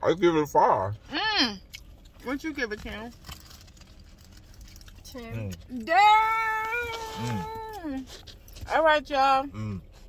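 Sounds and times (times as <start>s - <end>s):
low steady car cabin rumble: 0.0s - 10.0s.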